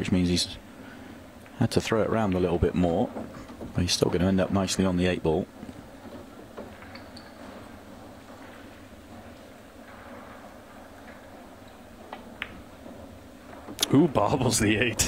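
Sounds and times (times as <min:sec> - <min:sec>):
low murmur: 0:00.0 - 0:15.0
pool balls clicking: 0:00.0 - 0:15.0.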